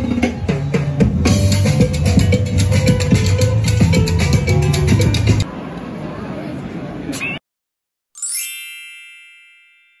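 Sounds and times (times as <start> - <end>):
sparkle chime: 8.2 - 10.0.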